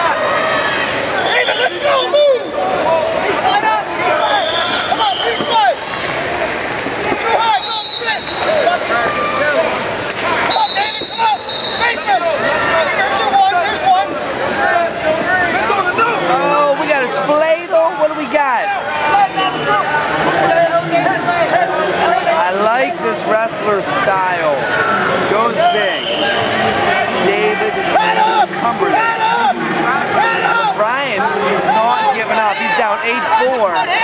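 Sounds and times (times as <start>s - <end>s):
crowd calling out: 0.0s - 34.0s.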